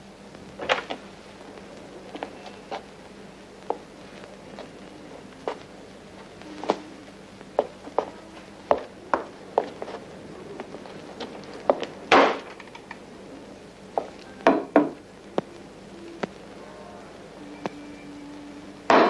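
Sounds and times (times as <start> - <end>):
faint steady hum: 0.0 - 19.0
footsteps: 0.5 - 12.9, 14.0 - 14.3.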